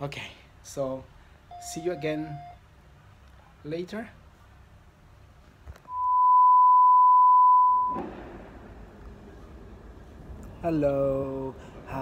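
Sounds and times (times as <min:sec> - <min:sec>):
high-pitched electronic beep: 0:01.5 - 0:02.6, 0:05.9 - 0:08.0.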